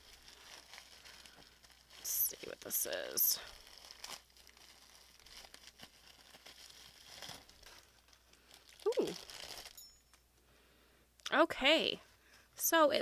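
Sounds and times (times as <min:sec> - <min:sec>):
bubble wrap crinkling: 0:00.0 - 0:09.9.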